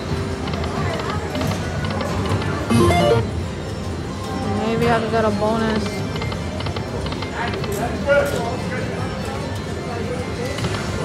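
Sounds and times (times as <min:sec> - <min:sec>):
electronic slot machine spin music: 0:02.6 - 0:04.2.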